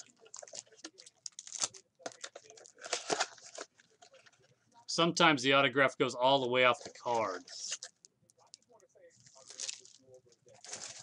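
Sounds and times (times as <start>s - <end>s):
wrapper tearing and crackling: 0.0s - 3.9s, 9.3s - 11.0s.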